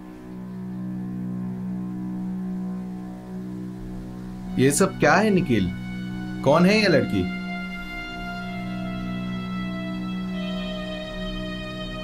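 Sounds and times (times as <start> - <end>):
low drone chord film score: 0.0 - 12.0.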